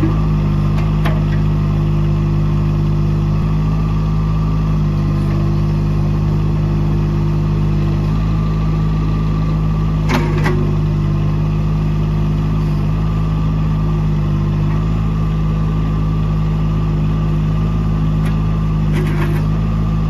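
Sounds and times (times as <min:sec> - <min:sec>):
diesel engine running: 0:00.0 - 0:20.0.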